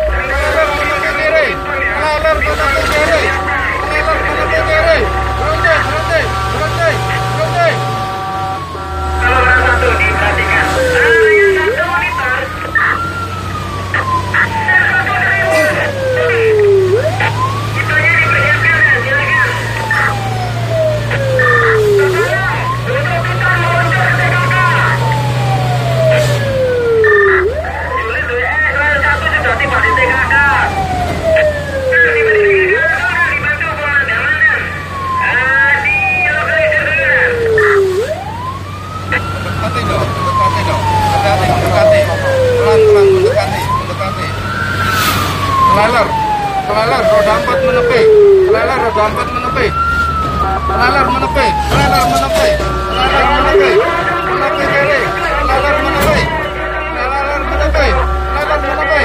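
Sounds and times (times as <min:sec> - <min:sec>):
engine drone: 0:00.0 - 0:59.0
fire truck siren wailing: 0:00.0 - 0:59.0
high warbling sounds: 0:35.8 - 0:39.4, 0:40.3 - 0:43.9, 0:44.5 - 0:59.0.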